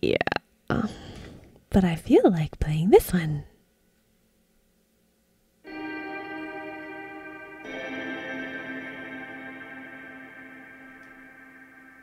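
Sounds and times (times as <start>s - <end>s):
electronic keyboard chord: 5.7s - 12.0s.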